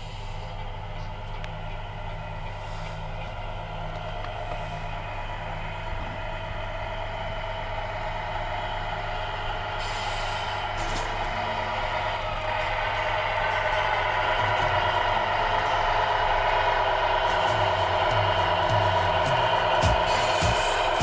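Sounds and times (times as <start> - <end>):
radio-controlled truck whining: 0.0 - 21.0.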